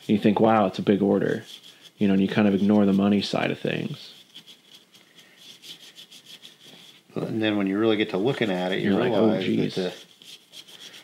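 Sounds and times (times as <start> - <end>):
brush scratching on wood: 0.0 - 11.0.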